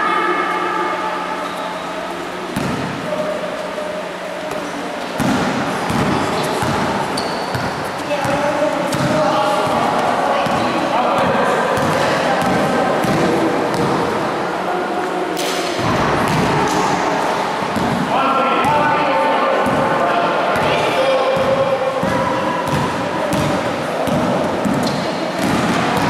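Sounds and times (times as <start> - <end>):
people talking and calling out: 0.0 - 26.0
basketball bouncing on gym floor: 2.6 - 3.0, 4.5 - 14.0, 15.8 - 16.8, 17.7 - 18.1, 21.4 - 26.0.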